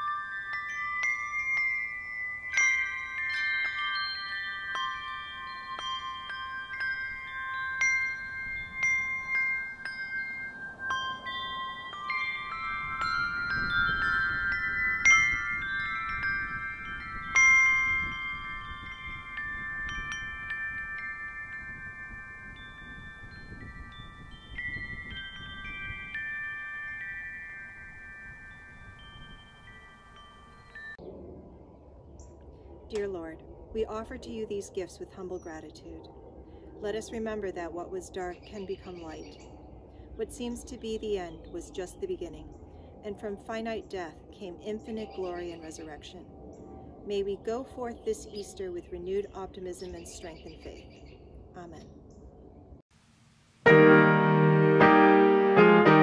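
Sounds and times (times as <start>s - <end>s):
handbells ringing chords: 0.0s - 31.0s.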